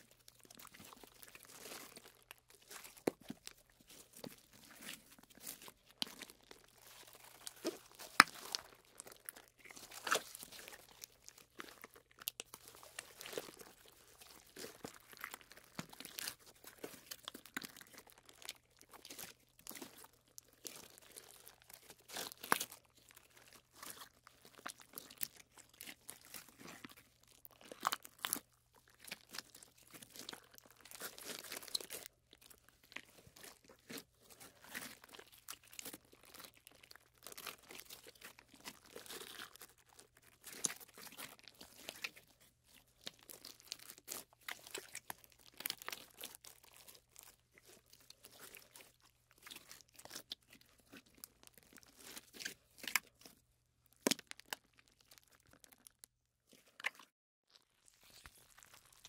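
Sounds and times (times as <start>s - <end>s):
slime crackling and popping: 0.1s - 59.0s.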